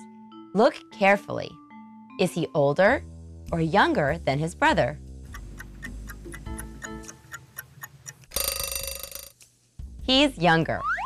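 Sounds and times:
soft background music: 0.0 - 11.0
countdown timer ticking: 3.5 - 9.2
alarm clock bell ringing: 8.4 - 9.3.

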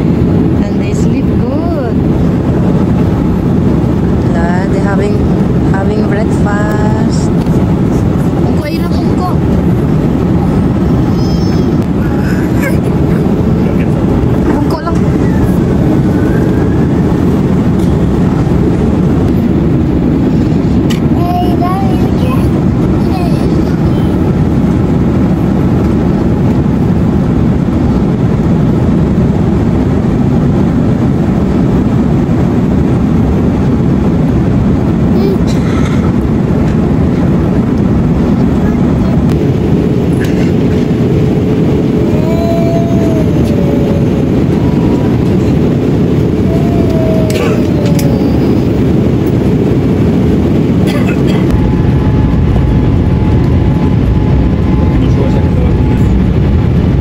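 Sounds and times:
jet airliner cabin noise: 0.0 - 57.0.

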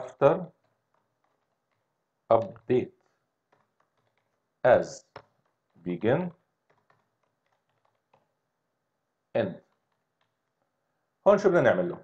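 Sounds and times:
faint keyboard typing: 0.1 - 8.6, 9.4 - 10.9.

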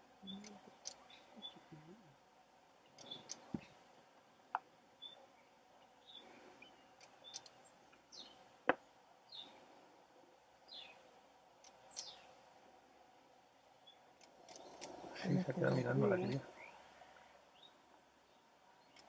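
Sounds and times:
sharp clicks: 7.0 - 7.6, 14.2 - 15.0.

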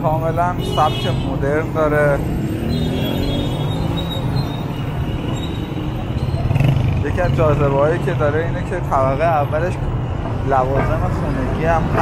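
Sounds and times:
motorcycle and car engines rumbling: 0.0 - 12.0.

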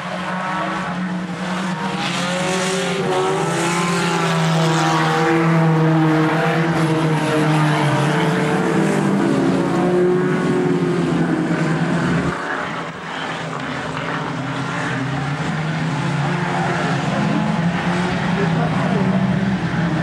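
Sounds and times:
race car engines running hard: 0.0 - 20.0.

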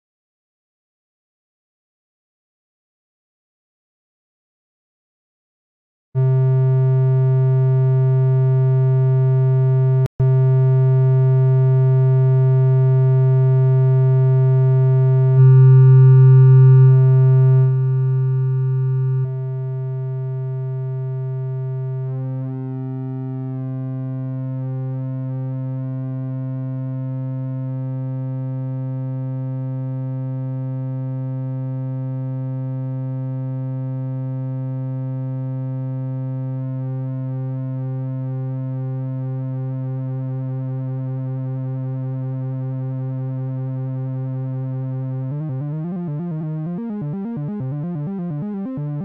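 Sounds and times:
synthesizer low drone: 6.2 - 27.7, 38.0 - 49.0.

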